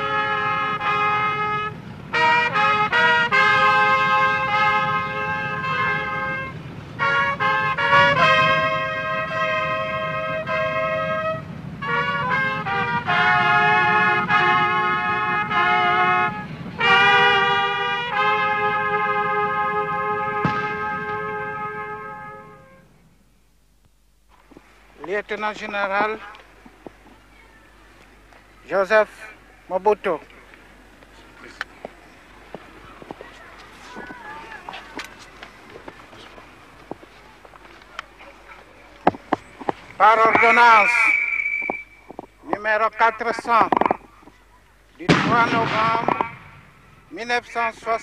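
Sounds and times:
brass fanfare: 0.0s - 23.0s, 40.0s - 41.6s, 45.0s - 48.0s
steady low rumble: 0.0s - 48.0s.

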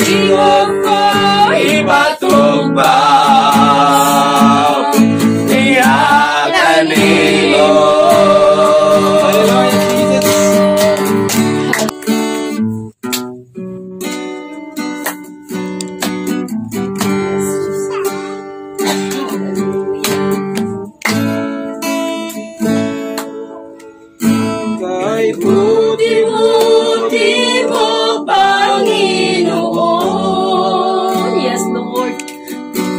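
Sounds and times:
person singing: 0.0s - 11.9s, 24.6s - 32.3s
acoustic guitar chords: 0.0s - 32.9s.

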